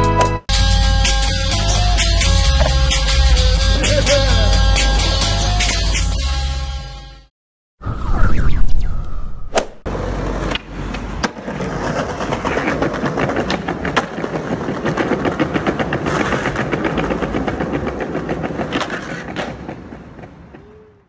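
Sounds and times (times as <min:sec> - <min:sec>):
skateboard wheels rolling on stone: 0:09.9 - 0:21.0
skateboard hitting the ground: 0:10.4 - 0:20.4.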